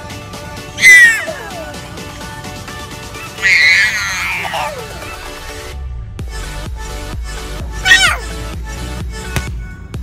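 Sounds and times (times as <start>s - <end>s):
toddler squealing with laughter: 0.8s - 1.6s, 3.3s - 5.0s, 7.8s - 8.2s.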